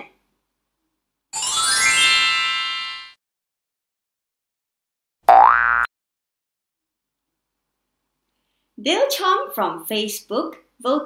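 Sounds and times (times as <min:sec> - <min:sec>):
cartoon boing rising pitch: 0:05.3 - 0:05.9.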